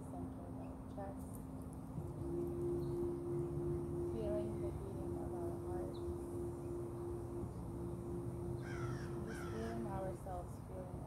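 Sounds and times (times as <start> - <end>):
steady low hum: 0.0 - 11.0
crow cawing: 8.6 - 9.7.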